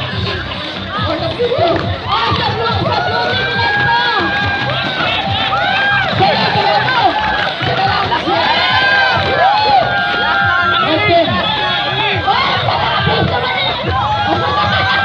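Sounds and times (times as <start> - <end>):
crowd shouting and cheering: 0.0 - 15.0.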